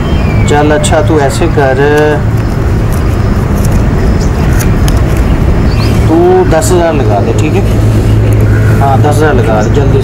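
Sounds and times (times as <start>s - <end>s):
constant low hum: 0.0s - 10.0s
low outdoor rumble: 0.0s - 10.0s.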